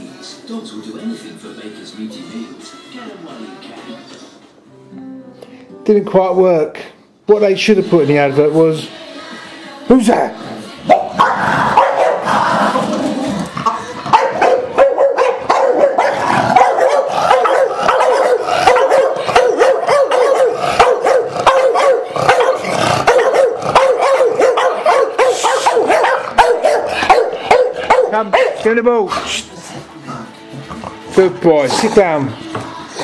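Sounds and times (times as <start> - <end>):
dogs barking excitedly: 10.8 - 12.8, 13.4 - 29.2.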